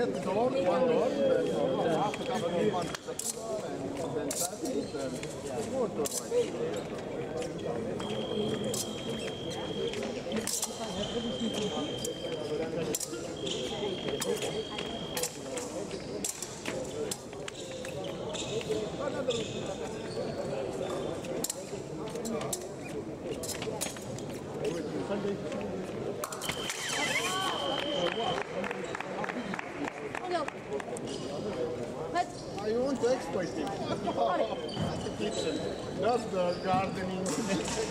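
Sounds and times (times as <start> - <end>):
murmur of voices: 0.0 - 37.9.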